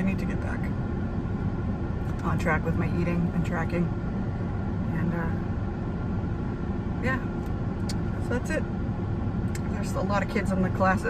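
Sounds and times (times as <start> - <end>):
car cabin hum and rumble: 0.0 - 11.0.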